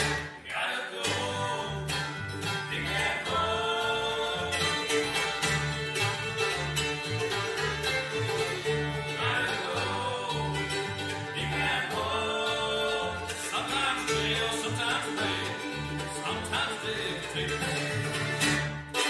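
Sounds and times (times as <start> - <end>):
fiddle lead: 0.0 - 0.4, 1.0 - 19.0
banjo: 0.0 - 19.0
guitar: 0.0 - 19.0
mandolin: 0.0 - 19.0
upright bass pulsing: 0.0 - 19.0.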